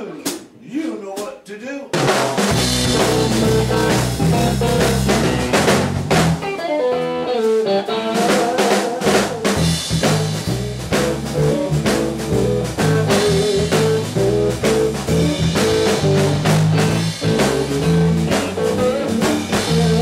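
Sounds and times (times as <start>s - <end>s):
drum kit: 0.0s - 20.0s
bass guitar: 2.4s - 20.0s
electric guitar: 2.6s - 20.0s.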